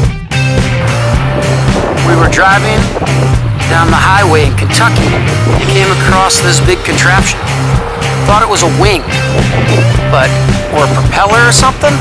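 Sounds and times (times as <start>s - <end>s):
rock music with bass beat: 0.0s - 12.0s.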